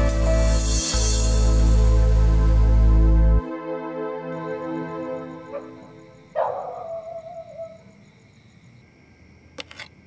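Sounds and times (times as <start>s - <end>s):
film background music: 0.0s - 7.1s
high night chirps: 4.4s - 8.9s
dog barking and howling: 5.5s - 7.9s.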